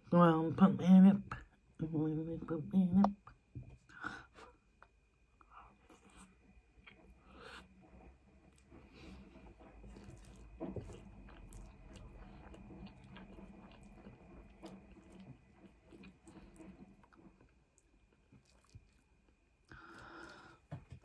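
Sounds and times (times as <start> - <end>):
close-up chewing: 4.8 - 21.0.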